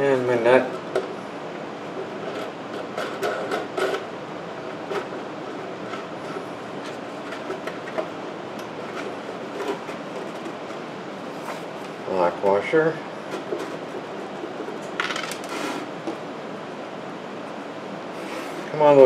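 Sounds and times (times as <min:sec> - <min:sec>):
steady background noise: 0:00.0 - 0:19.0.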